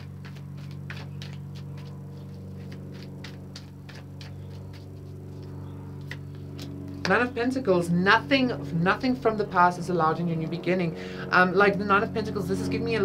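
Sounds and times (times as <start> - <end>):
cards being shuffled: 0.0 - 7.1
steady low hum: 0.0 - 13.0.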